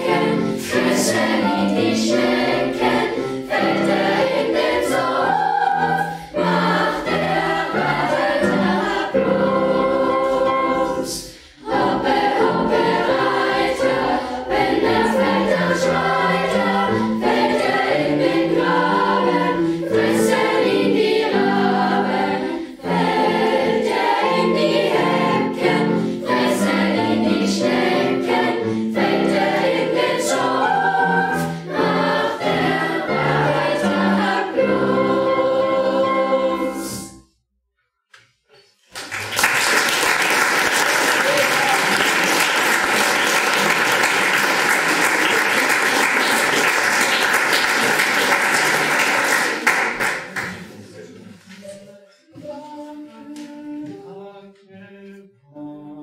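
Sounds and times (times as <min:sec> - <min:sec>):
children's choir singing: 0:00.0 - 0:37.2, 0:39.1 - 0:56.0.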